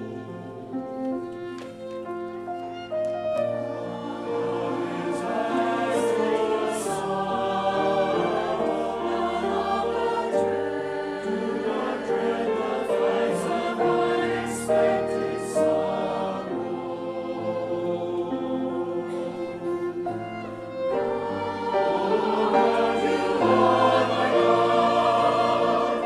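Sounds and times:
church choir singing: 0:00.0 - 0:26.0
violin: 0:00.0 - 0:26.0.

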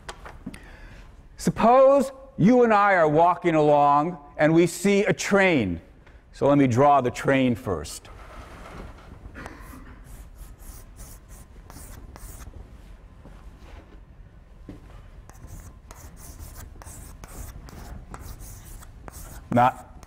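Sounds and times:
chalk scraping on blackboard: 0:09.7 - 0:12.5, 0:15.3 - 0:20.0.

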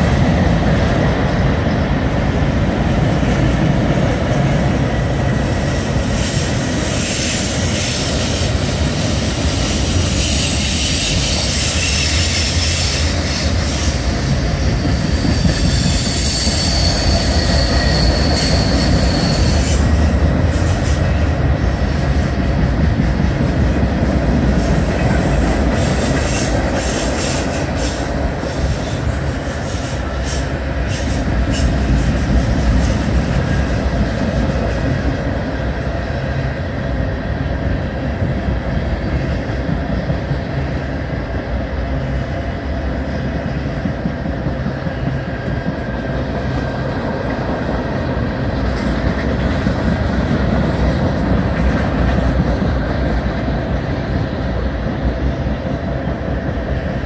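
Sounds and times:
train cars rumbling: 0:00.0 - 0:57.0
wheel squeal: 0:14.6 - 0:20.0.

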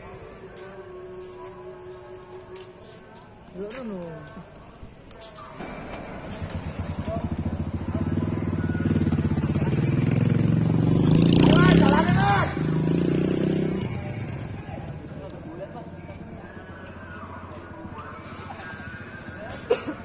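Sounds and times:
voices calling out: 0:00.0 - 0:20.0
motorcycle engine running: 0:05.6 - 0:16.8.

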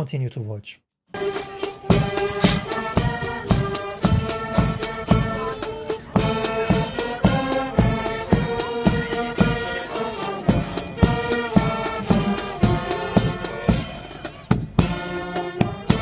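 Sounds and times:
brass band music: 0:11.9 - 0:13.8
steady drum beat: 0:12.0 - 0:13.6.

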